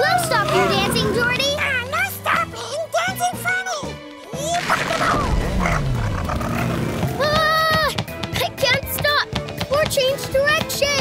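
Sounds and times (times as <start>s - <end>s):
cartoon motorcycle engine: 5.5s - 7.5s.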